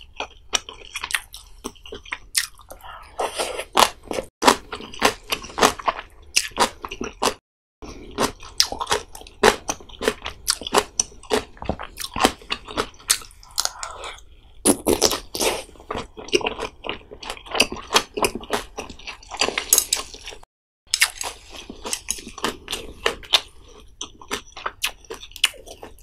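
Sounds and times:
close-miked chewing: 0:00.0 - 0:26.0.

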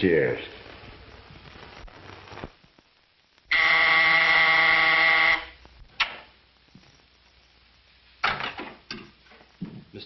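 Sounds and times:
electric buzzer: 0:03.5 - 0:05.6.

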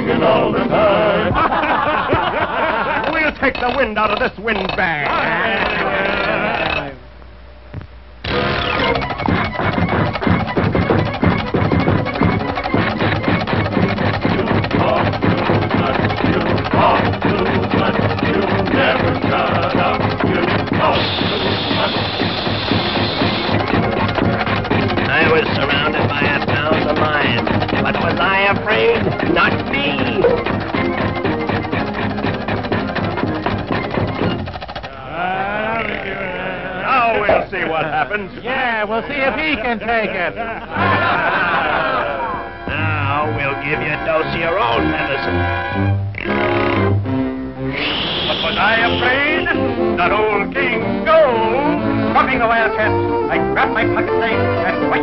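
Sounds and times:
rattling clatter sound effects: 0:01.6 - 0:06.8, 0:08.3 - 0:34.9
orchestral cartoon score: 0:40.8 - 0:55.0.

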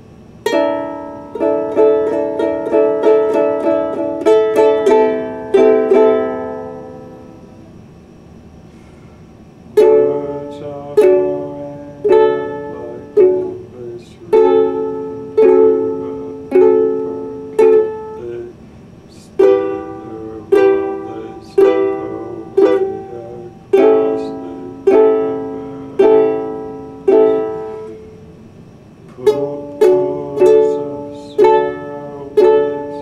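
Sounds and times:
ukulele chords strummed slowly: 0:00.4 - 0:07.6, 0:09.8 - 0:18.5, 0:19.1 - 0:28.2, 0:29.0 - 0:33.0.

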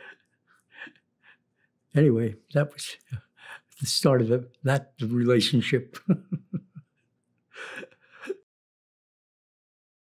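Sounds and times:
man's breathy laughter sighs: 0:00.0 - 0:01.4, 0:06.0 - 0:07.0, 0:07.6 - 0:08.4.

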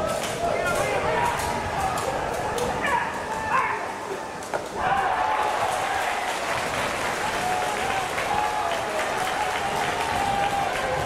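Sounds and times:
people shouting: 0:00.0 - 0:06.3, 0:07.3 - 0:11.0
crowd applause: 0:04.8 - 0:11.0.

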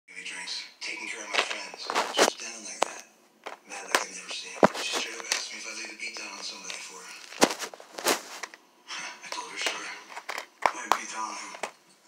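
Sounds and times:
people talking: 0:00.1 - 0:07.6, 0:08.9 - 0:11.7
plastic case clicking and knocking: 0:09.3 - 0:11.8.

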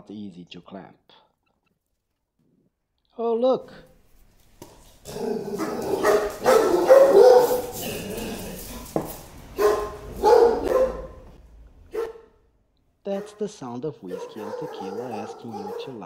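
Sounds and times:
dogs barking: 0:04.9 - 0:12.4, 0:13.1 - 0:16.0.

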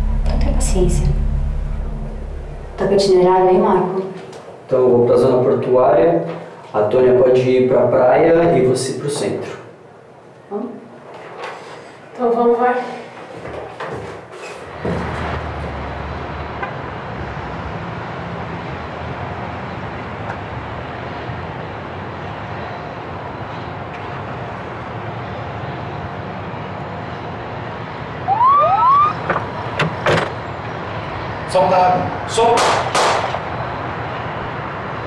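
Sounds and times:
city traffic noise: 0:00.0 - 0:35.0
short rising whoops: 0:28.2 - 0:29.3
loud knocks: 0:32.6 - 0:33.4.

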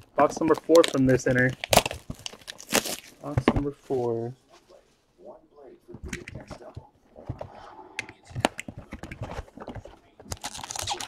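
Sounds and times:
wrappers tearing and crinkling: 0:00.4 - 0:03.2, 0:10.3 - 0:11.0.

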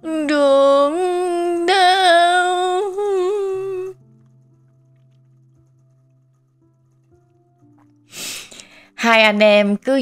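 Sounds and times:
woman singing a lullaby: 0:00.0 - 0:04.0
soft background music: 0:00.0 - 0:10.0.

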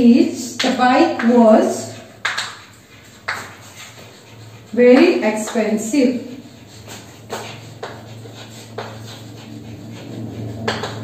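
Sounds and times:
chalk scraping on blackboard: 0:00.4 - 0:11.0.

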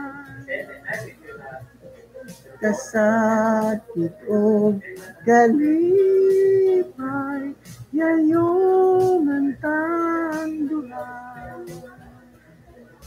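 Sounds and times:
person singing unaccompanied: 0:00.0 - 0:12.5.

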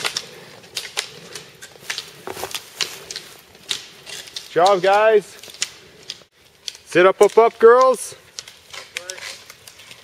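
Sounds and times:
ski pole tips clicking on asphalt: 0:00.0 - 0:10.0.

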